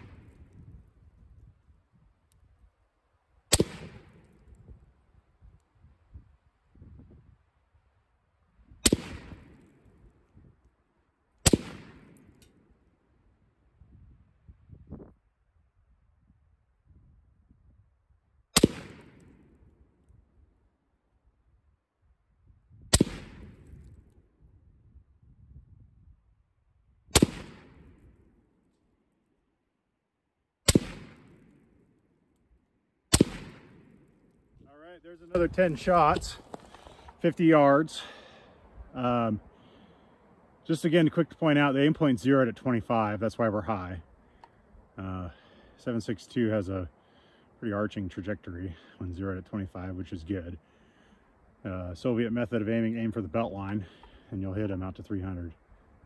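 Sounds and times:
rifle shots with echo: 0.0 - 0.6, 3.5 - 4.5, 8.8 - 10.0, 11.4 - 12.6, 18.6 - 19.6, 22.9 - 23.9, 27.1 - 28.3, 30.7 - 31.9, 33.1 - 34.4.

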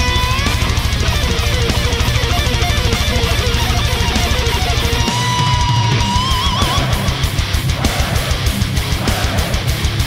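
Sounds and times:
distorted guitars: 0.0 - 10.0
double-bass kick drumming: 0.0 - 10.0.

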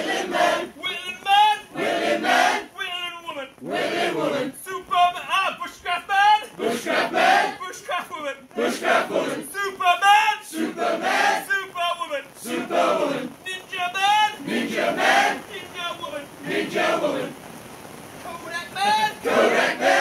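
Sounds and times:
group singing call-and-response: 0.0 - 1.0, 1.7 - 2.8, 3.6 - 4.6, 6.6 - 7.8, 8.5 - 9.8, 10.5 - 11.7, 12.4 - 13.6, 14.4 - 15.7, 16.4 - 17.4, 19.2 - 20.0.

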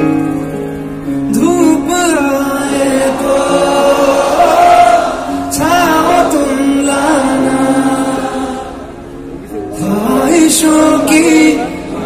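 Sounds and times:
piano accompaniment: 0.0 - 12.0
man singing a long note: 1.3 - 8.9, 9.7 - 12.0.

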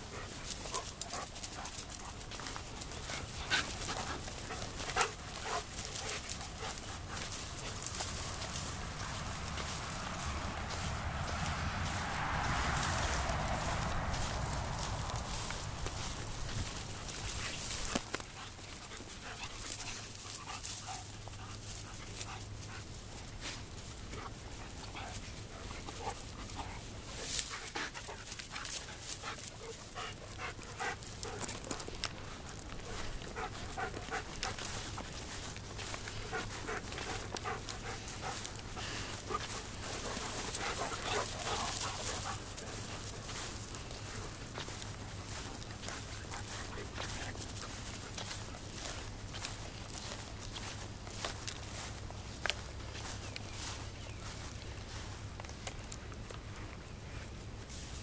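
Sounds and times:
dogs panting: 0.0 - 57.9
rustling and footfalls in grass: 0.0 - 58.0.

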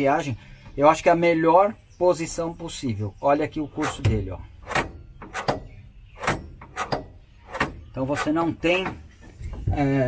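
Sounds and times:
accelerator pedal clicks and knocks: 3.8 - 9.8.

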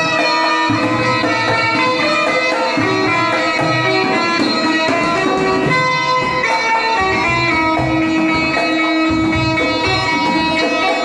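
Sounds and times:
keyed zither melody: 0.0 - 11.0.

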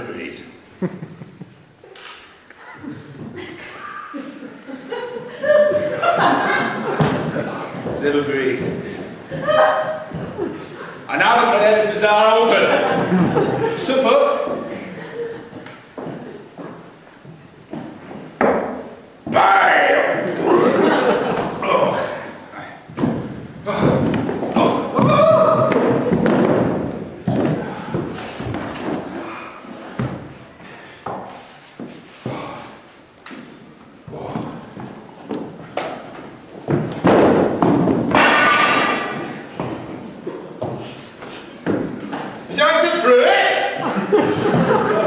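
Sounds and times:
indistinct voices in a hall: 0.0 - 45.0
thumps and knocks: 22.9 - 29.1, 34.1 - 40.0.

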